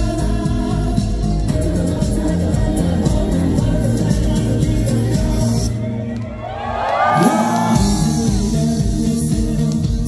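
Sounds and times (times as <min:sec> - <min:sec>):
man singing into microphone: 0:00.0 - 0:06.2, 0:07.1 - 0:10.0
live pop ballad with band: 0:00.0 - 0:10.0
crowd cheering: 0:06.0 - 0:08.8.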